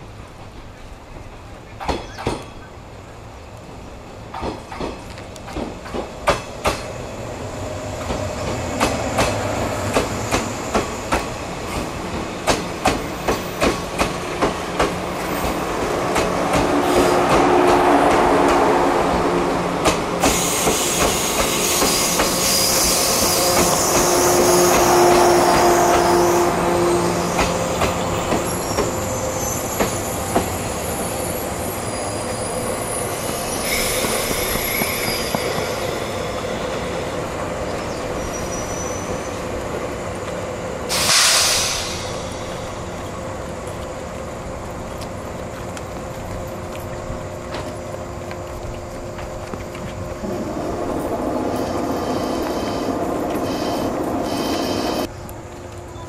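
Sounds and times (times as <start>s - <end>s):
train rumble: 0.0s - 56.0s
train wheels clacking: 4.3s - 7.0s, 8.0s - 26.2s.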